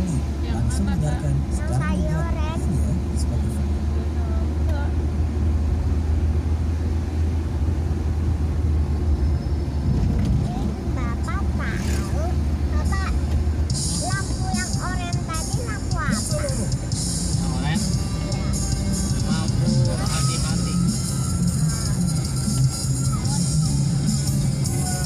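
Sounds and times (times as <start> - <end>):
voices: 0.0 - 5.0, 10.2 - 25.0
vehicle engine and road drone: 0.0 - 25.0.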